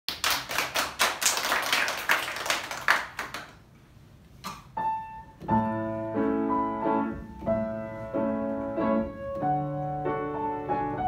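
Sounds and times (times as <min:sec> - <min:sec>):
small group applauding: 0:00.1 - 0:03.7.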